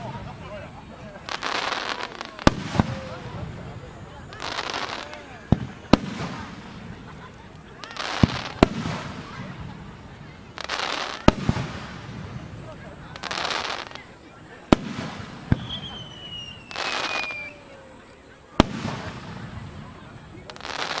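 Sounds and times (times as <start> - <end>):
fireworks hiss: 0.0 - 21.0
falling whistle: 15.6 - 17.8.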